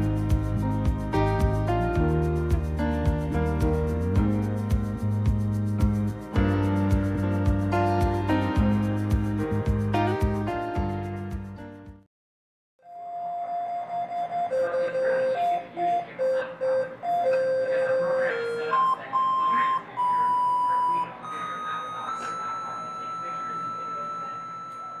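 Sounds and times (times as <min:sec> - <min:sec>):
electronic beep melody: 0:12.9 - 0:25.0.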